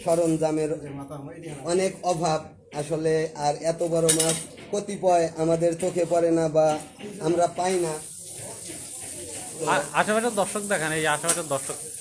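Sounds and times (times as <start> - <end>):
steady high hiss: 9.5 - 12.0
man talking: 9.6 - 11.9.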